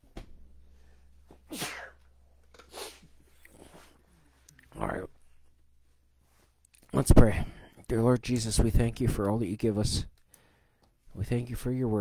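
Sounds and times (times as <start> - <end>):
steady low hum: 0.0 - 11.8
person sneezing: 1.5 - 2.0, 2.7 - 3.8.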